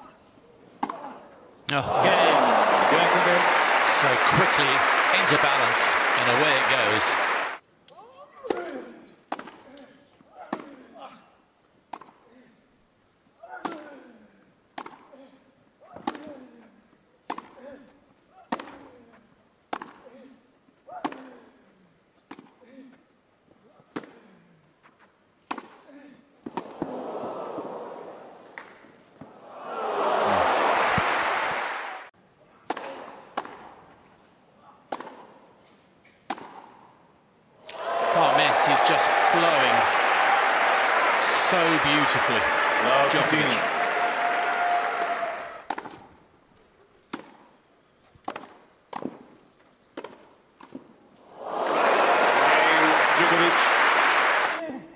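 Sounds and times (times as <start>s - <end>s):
crowd murmuring: 1.7s - 7.6s, 38.0s - 44.3s
racket striking tennis ball: 32.6s - 33.8s, 34.9s - 35.4s, 36.2s - 36.8s, 45.7s - 46.1s, 47.1s - 47.5s, 48.2s - 49.4s, 50.0s - 50.9s.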